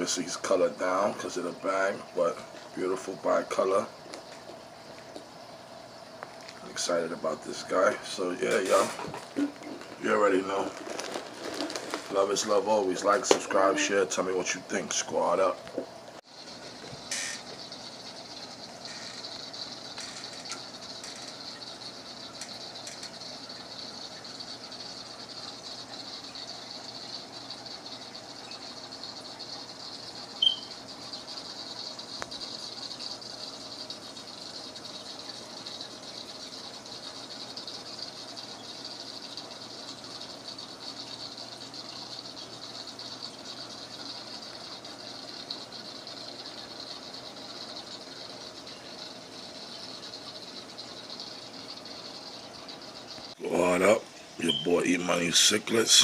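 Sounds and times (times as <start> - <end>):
aquarium water hissing and bubbling: 0.0 - 56.0
short high squeak: 17.1 - 17.5.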